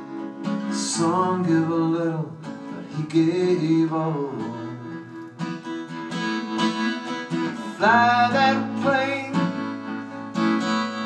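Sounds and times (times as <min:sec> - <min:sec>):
acoustic guitar strumming: 0:00.0 - 0:11.0
person singing: 0:00.6 - 0:05.3, 0:06.9 - 0:11.0.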